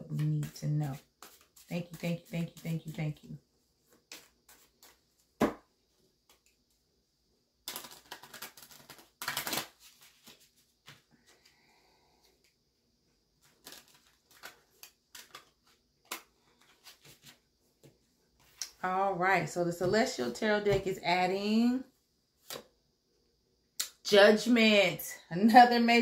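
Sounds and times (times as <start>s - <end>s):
cards being shuffled: 0.1s - 2.7s, 3.9s - 5.6s, 7.6s - 11.4s, 13.4s - 18.8s
rapid card riffling: 7.6s - 10.4s.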